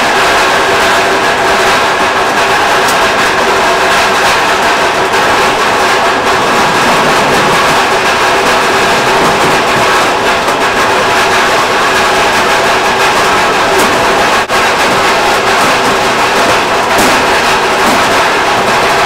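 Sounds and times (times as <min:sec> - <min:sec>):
machine running with mechanical din: 0:00.0 - 0:19.0
golf balls rattling: 0:04.6 - 0:14.3.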